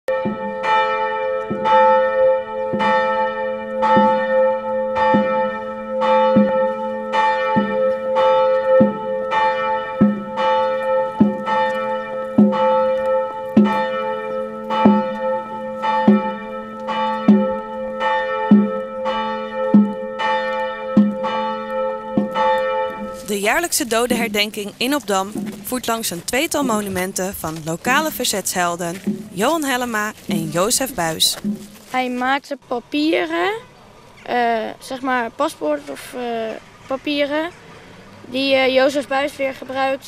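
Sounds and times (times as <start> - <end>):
church bell tolling: 0.1 - 31.6.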